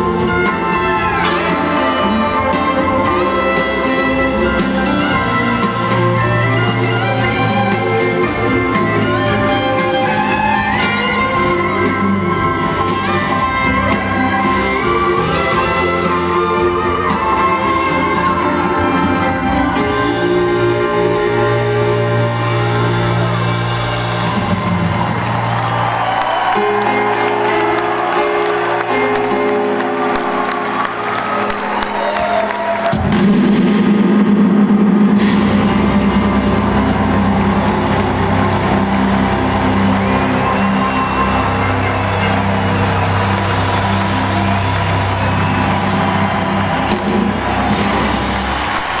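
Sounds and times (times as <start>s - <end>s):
crowd cheering: 0.0s - 49.0s
live rock band playing: 0.0s - 49.0s
electric guitar lines: 32.9s - 49.0s.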